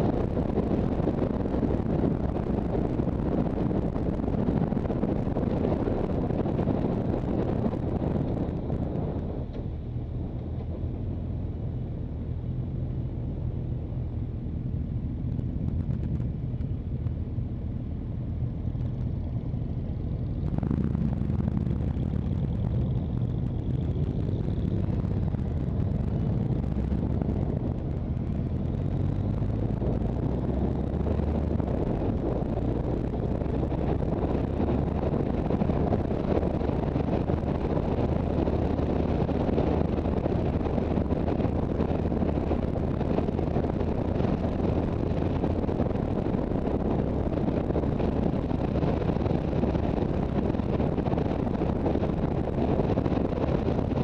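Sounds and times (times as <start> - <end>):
motorcycle engine and road rumble: 0.0 - 54.0
wind rushing over microphone: 0.0 - 54.0.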